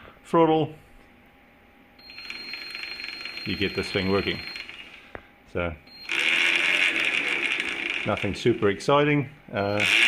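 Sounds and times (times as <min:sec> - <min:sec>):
electric motor whine: 0:06.0 - 0:08.7.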